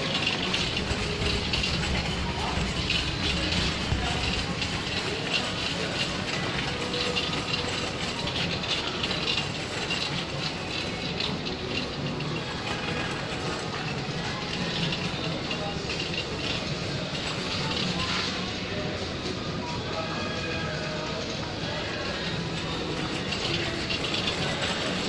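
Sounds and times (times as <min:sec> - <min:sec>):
shopping cart rattling: 0:00.0 - 0:25.0.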